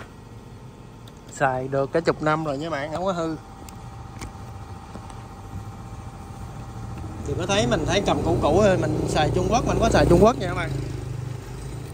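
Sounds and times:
low engine hum: 0:00.0 - 0:11.9.

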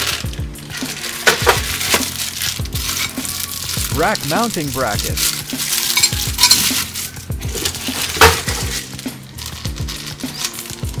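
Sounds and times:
background music with steady beat: 0:00.0 - 0:11.0
plastic bags crinkling: 0:00.0 - 0:11.0.

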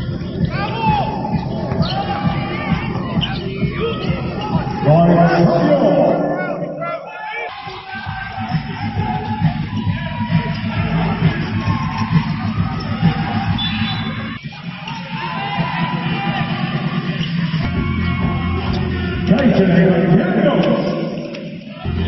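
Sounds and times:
music with steady beat: 0:00.0 - 0:06.8, 0:07.5 - 0:22.0
crowd chatter: 0:00.0 - 0:22.0.

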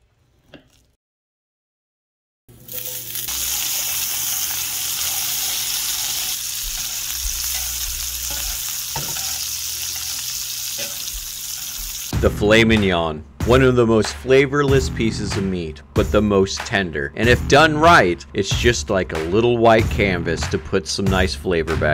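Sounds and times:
steaks sizzling in a pan: 0:02.6 - 0:12.1.

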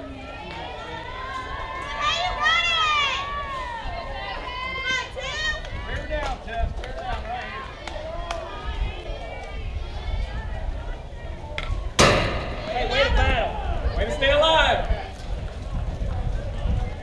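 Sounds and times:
bat striking softball: 0:12.0 - 0:13.3.

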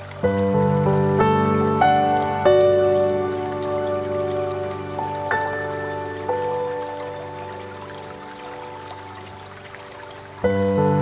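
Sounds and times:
slow piano music: 0:00.0 - 0:11.0
soft patter of water: 0:00.0 - 0:11.0.

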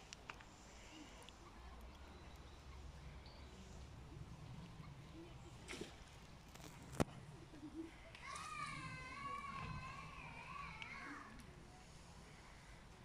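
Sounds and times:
faint low outdoor rumble: 0:00.0 - 0:13.0
child calling out: 0:08.2 - 0:11.4.

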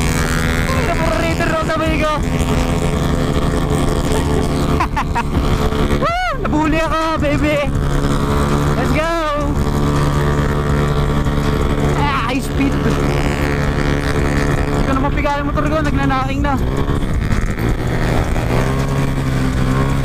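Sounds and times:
motor scooter engine running: 0:00.0 - 0:20.0.

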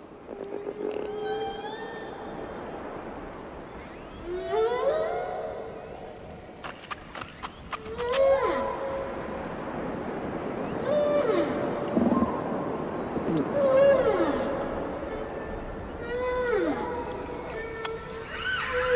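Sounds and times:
ocean noise underwater: 0:00.0 - 0:18.9
whale calls: 0:00.2 - 0:06.4, 0:07.5 - 0:18.9.

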